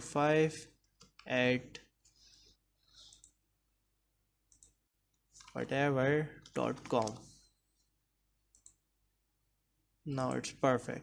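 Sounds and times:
person speaking: 0:00.0 - 0:02.0, 0:05.2 - 0:07.7, 0:10.0 - 0:11.0.

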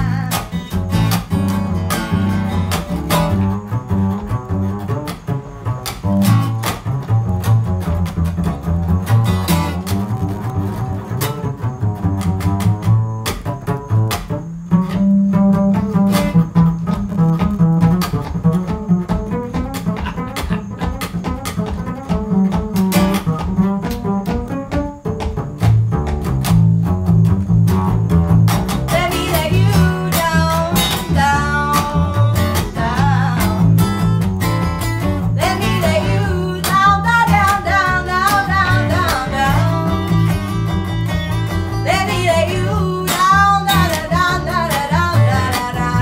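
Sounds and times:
woman singing: 0:00.0 - 0:00.8, 0:28.9 - 0:34.2, 0:35.2 - 0:40.6, 0:41.7 - 0:46.0
acoustic guitar strumming: 0:00.0 - 0:46.0
upright bass plucked: 0:00.0 - 0:46.0
percussive taps: 0:15.6 - 0:28.9.

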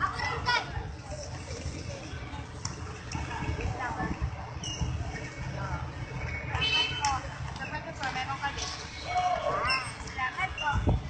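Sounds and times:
children's voices: 0:00.0 - 0:02.0
people talking: 0:00.0 - 0:11.0.

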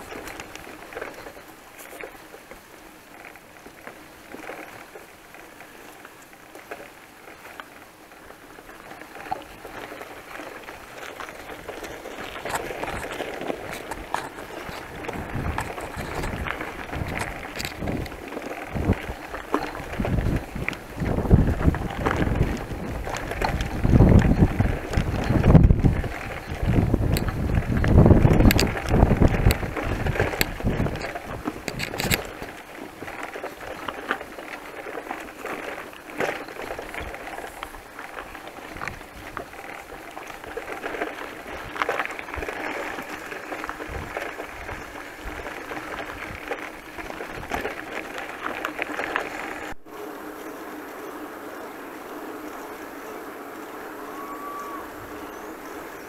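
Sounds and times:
bike clicks and rattles: 0:00.0 - 0:49.8
bicycle tyres on dirt track: 0:00.0 - 0:56.0
wind buffeting microphone: 0:10.6 - 0:34.0, 0:36.6 - 0:49.8, 0:51.0 - 0:56.0.

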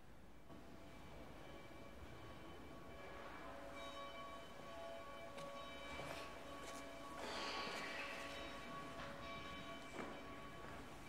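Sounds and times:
church organ sustained notes: 0:00.9 - 0:11.0.

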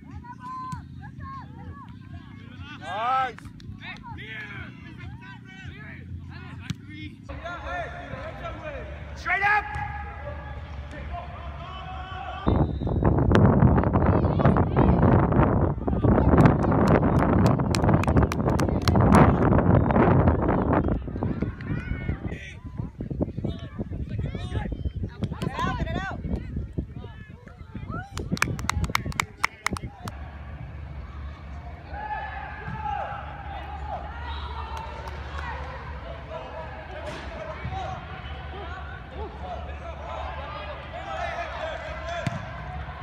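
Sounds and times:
wind blowing across microphone: 0:12.4 - 0:30.2
ball being struck: 0:42.2 - 0:42.5.

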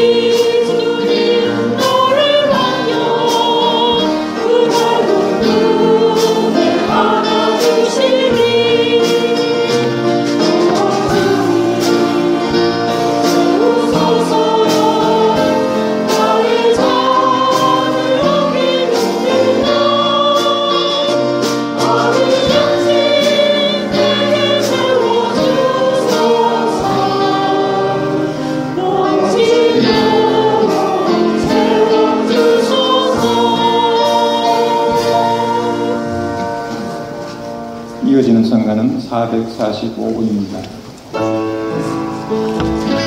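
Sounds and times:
choir singing a hymn: 0:00.0 - 0:38.9
instrumental accompaniment: 0:00.0 - 0:43.0.

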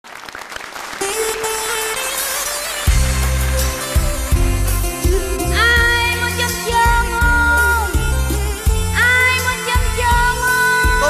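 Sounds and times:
audience applauding: 0:00.0 - 0:04.4
music with long held note: 0:01.0 - 0:11.0.

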